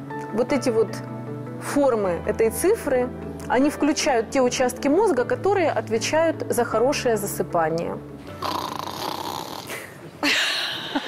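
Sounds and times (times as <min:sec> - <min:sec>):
person snoring: 0:08.4 - 0:09.9.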